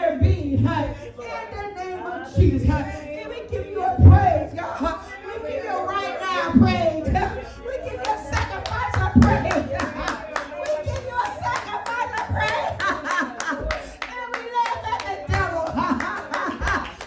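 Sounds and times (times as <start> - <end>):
hand clapping in rhythm: 8.0 - 17.0.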